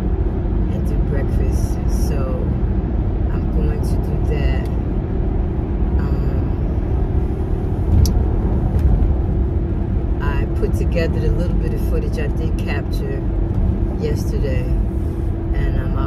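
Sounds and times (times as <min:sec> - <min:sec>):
car road and engine rumble: 0:00.0 - 0:16.0
low hum: 0:00.0 - 0:16.0.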